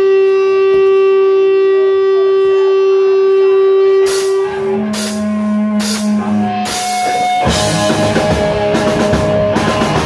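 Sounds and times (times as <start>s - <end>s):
electric guitar feedback: 0.0s - 10.0s.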